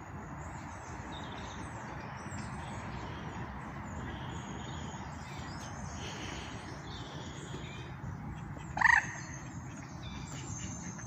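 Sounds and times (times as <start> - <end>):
outdoor background noise: 0.0 - 11.0
faint bird chirping: 0.2 - 11.0.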